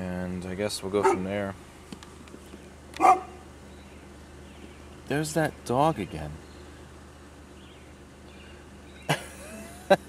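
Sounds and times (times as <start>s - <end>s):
faint low hum: 0.0s - 10.0s
dog barking: 1.0s - 1.3s, 3.0s - 3.4s.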